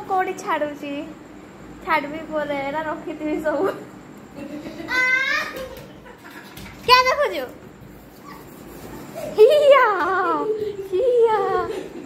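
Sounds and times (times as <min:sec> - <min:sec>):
faint background noise: 0:00.0 - 0:12.0
child's high-pitched shout: 0:04.9 - 0:05.7.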